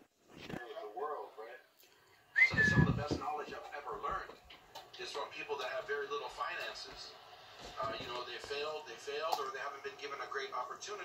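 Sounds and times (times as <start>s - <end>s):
person whistling: 2.4s - 3.0s
low muffled sound: 2.4s - 4.3s
faint muffled voices: 2.4s - 11.0s.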